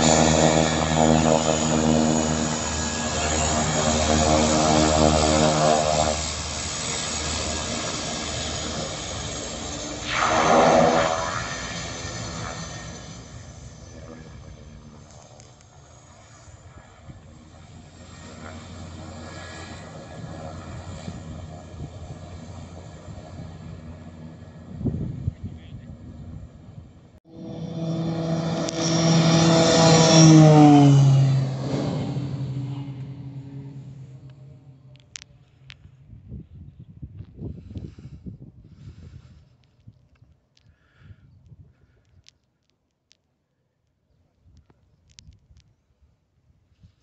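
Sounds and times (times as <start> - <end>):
turboprop engines whining: 0.0 - 40.6.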